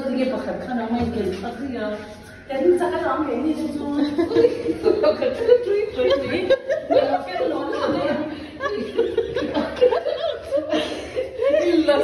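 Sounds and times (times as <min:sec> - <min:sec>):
people laughing: 0:04.0 - 0:12.0.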